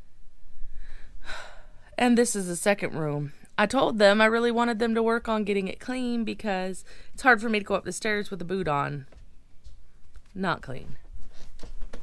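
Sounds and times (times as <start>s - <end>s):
woman breathing: 0.4s - 2.0s, 6.8s - 7.2s.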